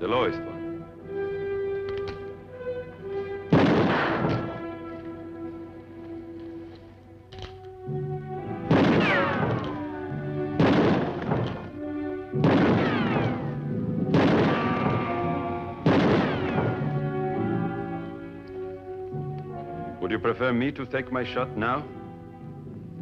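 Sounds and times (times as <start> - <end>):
orchestral music: 0.0 - 23.0
pistol shots: 3.5 - 5.0, 8.6 - 11.8, 12.4 - 17.6.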